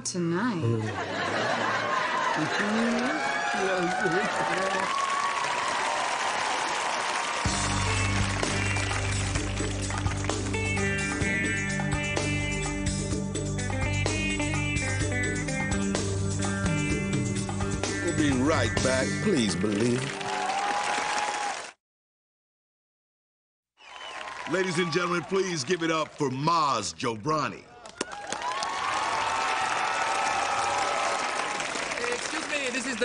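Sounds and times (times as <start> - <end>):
audience laughing and applauding: 0.8 - 10.8, 18.4 - 21.8, 23.9 - 26.5, 27.8 - 33.0
music with steady bass line: 7.5 - 19.7.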